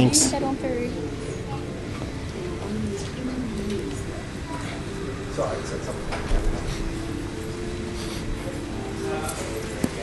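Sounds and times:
distant voices murmuring: 0:00.0 - 0:10.0
indoor hall hum: 0:00.0 - 0:10.0.

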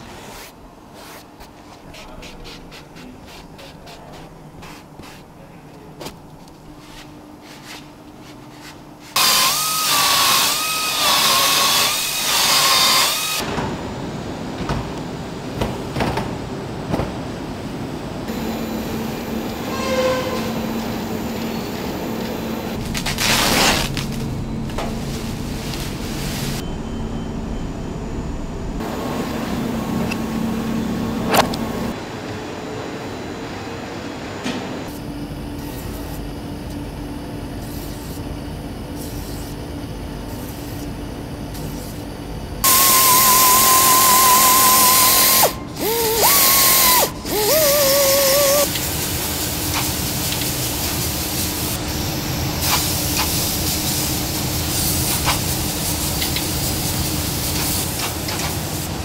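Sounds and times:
workshop machinery running: 0:00.0 - 0:59.0
compressed air hissing: 0:42.6 - 0:51.8.

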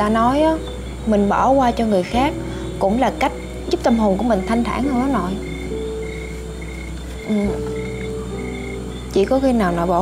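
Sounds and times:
frogs calling: 0:00.0 - 0:10.0.

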